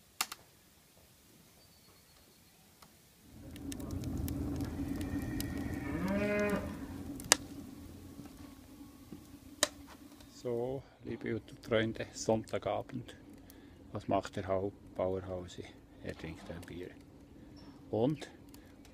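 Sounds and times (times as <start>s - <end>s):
steady low rumble: 3.2s - 18.9s
cow mooing: 3.8s - 7.1s.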